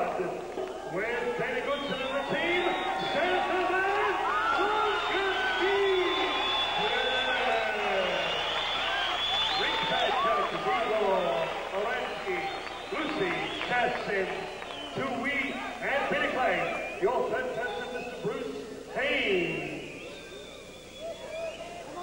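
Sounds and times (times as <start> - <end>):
announcer's amplified voice: 0.0 - 8.5, 9.4 - 20.2
crowd noise: 0.0 - 22.0.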